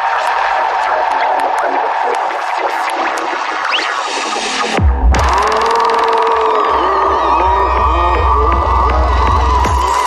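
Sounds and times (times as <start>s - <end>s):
dark psytrance music: 0.0s - 10.0s
deep bass: 4.6s - 10.0s.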